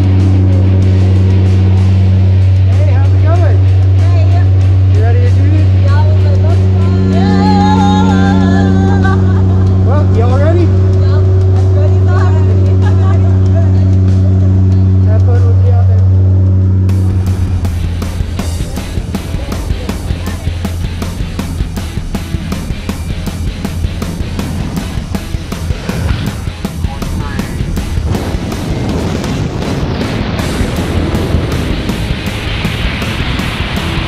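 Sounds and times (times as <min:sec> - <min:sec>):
music: 0:00.0 - 0:34.0
propeller engine drone: 0:00.0 - 0:34.0
people shouting: 0:06.8 - 0:11.4.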